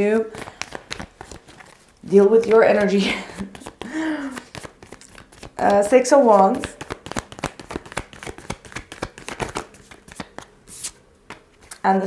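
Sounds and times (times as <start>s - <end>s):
cards being shuffled: 0.1s - 11.9s.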